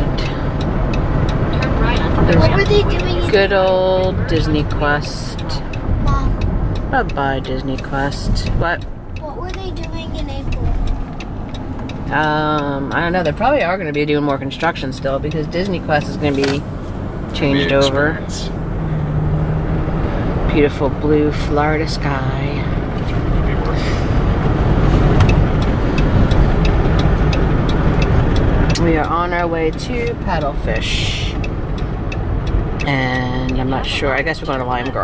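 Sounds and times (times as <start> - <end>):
light ticks: 0.0 - 16.8, 22.0 - 35.0
road and engine rumble: 0.0 - 35.0
faint voice: 17.5 - 17.9.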